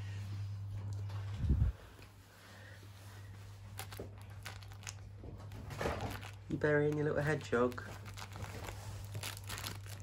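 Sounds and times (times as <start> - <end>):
puppy rustling in fleece blanket: 7.4 - 10.0.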